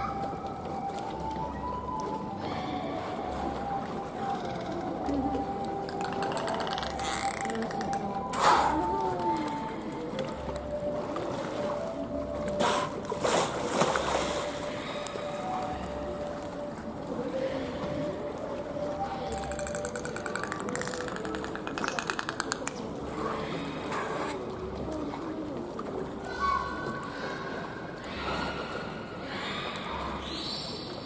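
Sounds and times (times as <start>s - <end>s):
background music with slow beat: 0.0s - 27.2s
dolphins splashing water: 2.3s - 31.0s.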